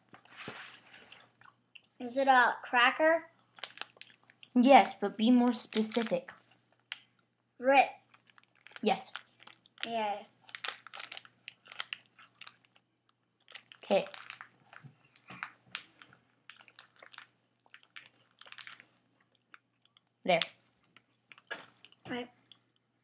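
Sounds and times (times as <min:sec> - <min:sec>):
person chewing a cracker: 0:01.0 - 0:02.0, 0:03.4 - 0:04.6, 0:08.0 - 0:09.8, 0:10.4 - 0:20.2, 0:20.8 - 0:23.0
person speaking: 0:04.5 - 0:06.4, 0:08.8 - 0:09.2, 0:09.8 - 0:10.4, 0:13.8 - 0:14.2.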